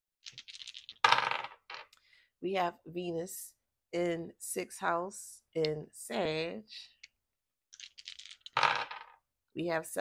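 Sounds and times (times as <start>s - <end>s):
dice clattering on hard surface: 0.2s - 1.9s, 7.7s - 9.2s.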